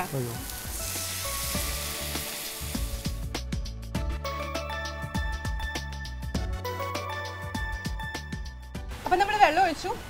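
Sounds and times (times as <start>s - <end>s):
water hissing in hot oil: 0.0s - 3.4s.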